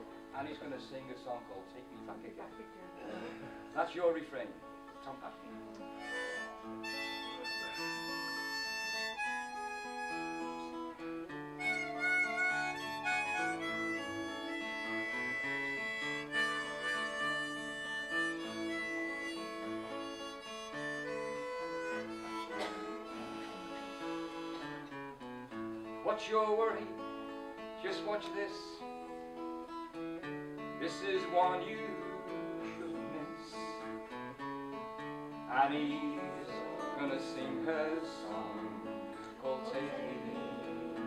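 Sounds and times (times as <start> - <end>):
strummed acoustic guitar: 0.0 - 41.0
harmonica melody: 4.6 - 26.1, 26.7 - 41.0.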